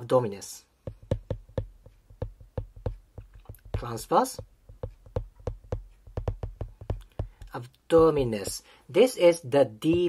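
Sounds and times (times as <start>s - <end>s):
stylus tapping on glass screen: 0.8s - 8.6s.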